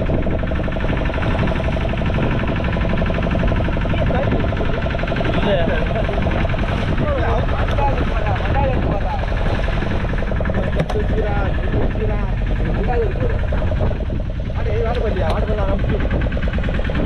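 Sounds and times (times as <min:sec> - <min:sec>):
boat engine running: 0:00.0 - 0:17.0.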